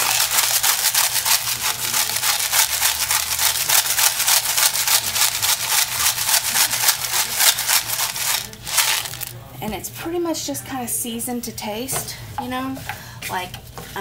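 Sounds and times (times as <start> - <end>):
salt grinder grinding: 0.0 - 9.3.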